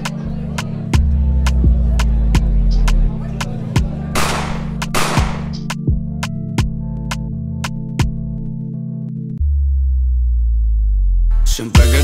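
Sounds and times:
music beat: 0.0s - 12.0s
deep synth bass note: 9.4s - 12.0s.

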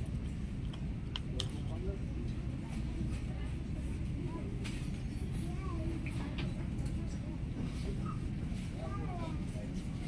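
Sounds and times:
indoor shop rumble: 0.0s - 10.0s
faint voices: 1.0s - 10.0s.

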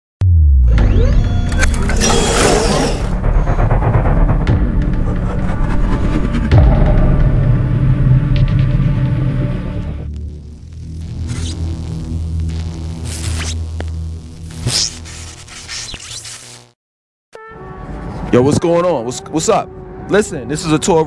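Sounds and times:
rushing sound effects: 0.2s - 10.1s
intro music with bass drone: 0.2s - 15.2s.

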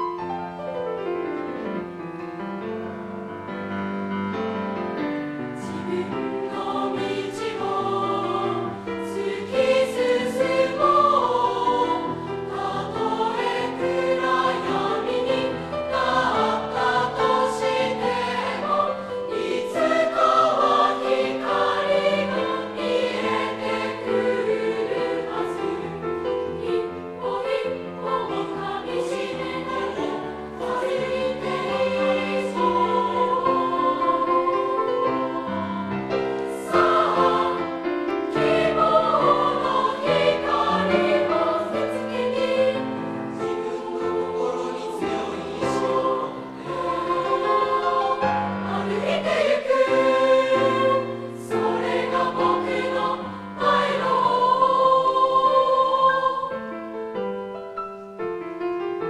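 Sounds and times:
grand piano: 0.0s - 59.0s
children's choir singing: 5.6s - 56.9s.

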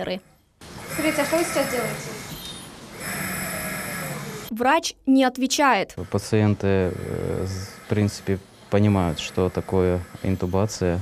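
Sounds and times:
hospital equipment hiss and hum: 6.0s - 11.0s.

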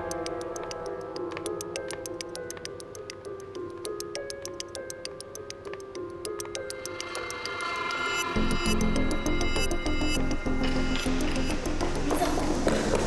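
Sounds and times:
fast ticking pulse: 0.0s - 12.6s
held synthesizer notes: 5.2s - 12.9s.

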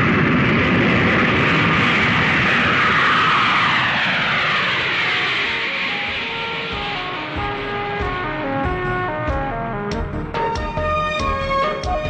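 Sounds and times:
jet engine noise with whine: 0.0s - 12.0s.

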